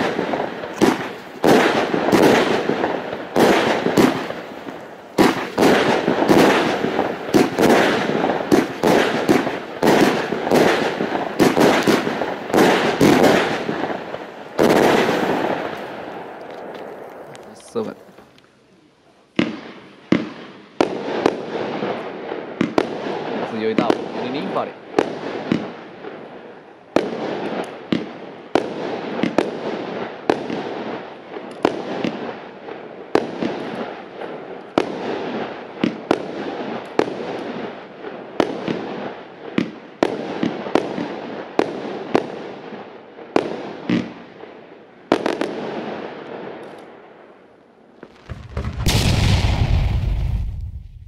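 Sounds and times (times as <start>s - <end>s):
fireworks firing sharp reports: 0.0s - 18.2s, 19.3s - 46.6s, 48.0s - 51.0s
crackling bursting stars: 48.1s - 51.0s
deep whoosh and boom: 48.3s - 51.0s.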